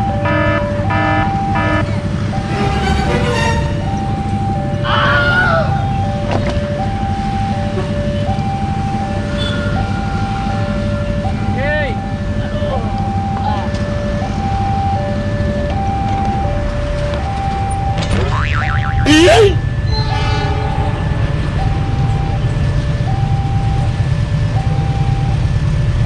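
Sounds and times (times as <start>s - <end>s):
level crossing two-tone alarm: 0.0s - 4.8s, 5.5s - 25.6s
idling motorcycles and traffic: 0.0s - 26.0s.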